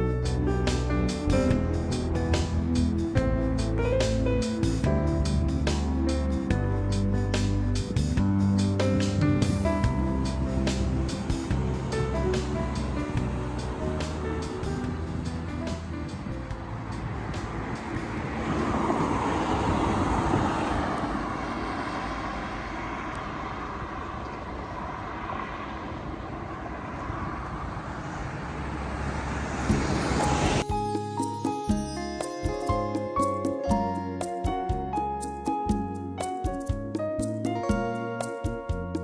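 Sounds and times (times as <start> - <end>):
background music: 0.0 - 18.3, 30.1 - 39.0
road traffic noise: 0.0 - 39.0
vehicle passing: 0.4 - 30.7.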